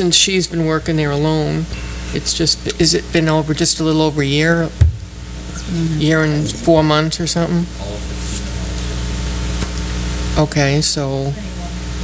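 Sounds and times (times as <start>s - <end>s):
low hum: 0.0s - 10.4s.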